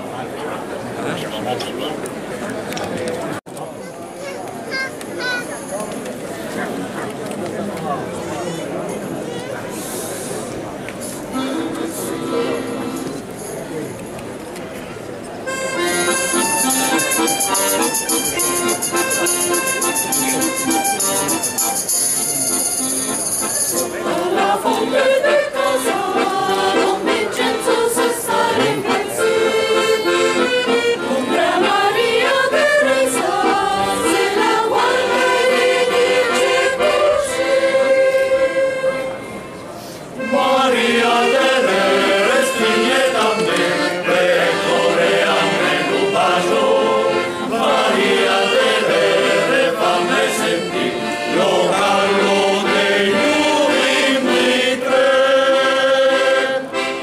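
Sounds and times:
accordion playing folk tune: 11.0s - 13.5s, 15.4s - 57.0s
mixed choir singing: 23.8s - 39.3s, 40.2s - 57.0s.

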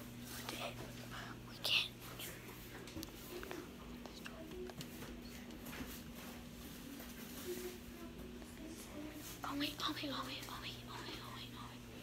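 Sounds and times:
faint steady hum: 0.0s - 12.0s
boy whispering: 0.2s - 2.4s, 3.7s - 4.8s, 8.5s - 12.0s.

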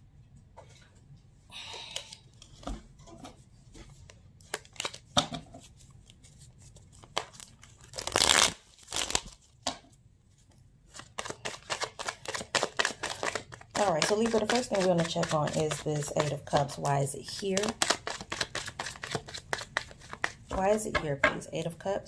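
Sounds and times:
cards shuffling: 4.0s - 9.6s, 10.9s - 21.0s.

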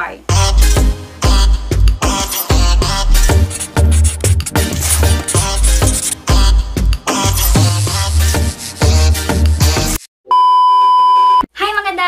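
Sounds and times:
woman speaking: 11.6s - 12.0s.

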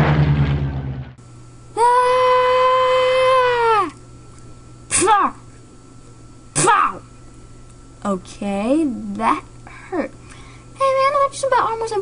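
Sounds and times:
person screaming: 1.8s - 4.0s.

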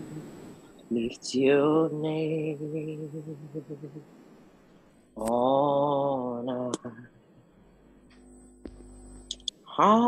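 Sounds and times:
man singing long held note: 0.9s - 4.0s
click: 8.0s - 9.6s.

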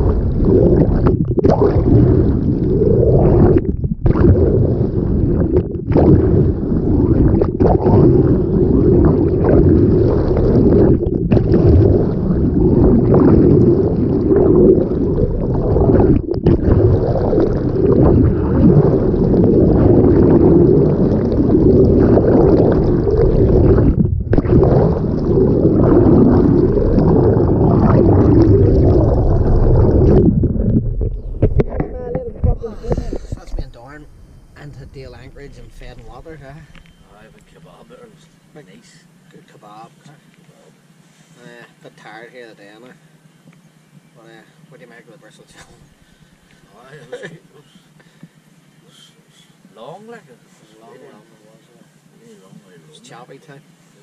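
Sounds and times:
water rushing and gurgling: 0.0s - 38.2s.

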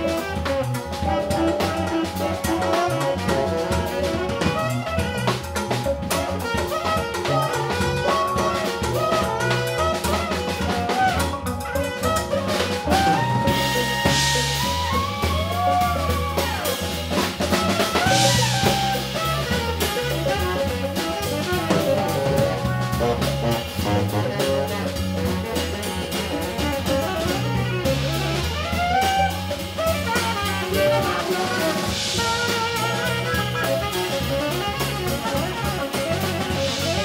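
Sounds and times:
bass guitar: 0.0s - 37.0s
drum kit: 0.0s - 37.0s
electric guitar: 0.0s - 37.0s
tenor saxophone lead: 0.0s - 37.0s.

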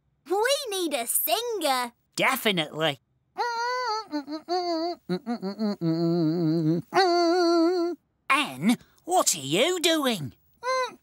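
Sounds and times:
cartoon voice humming: 3.4s - 8.0s.

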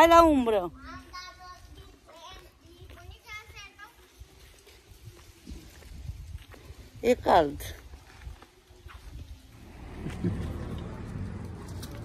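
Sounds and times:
low rumble: 9.5s - 12.0s.

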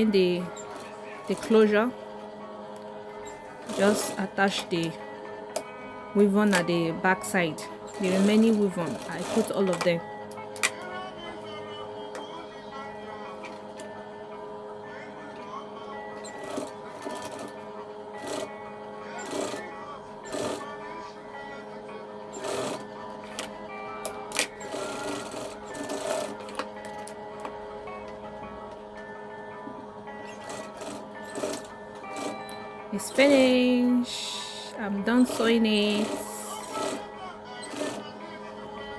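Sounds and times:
background music: 0.0s - 38.9s
sewing machine stitching: 3.6s - 4.9s, 7.9s - 10.0s, 19.2s - 19.6s, 22.3s - 22.9s, 24.3s - 26.6s, 30.2s - 32.5s, 35.1s - 38.1s.

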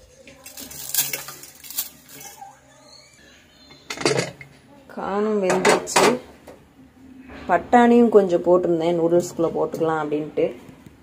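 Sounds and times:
metal utensils clinking on dishes: 3.8s - 4.5s.

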